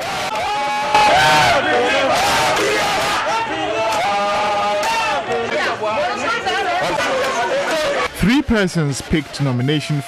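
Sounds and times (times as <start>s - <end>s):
crowd of protesters shouting: 0.0s - 10.0s.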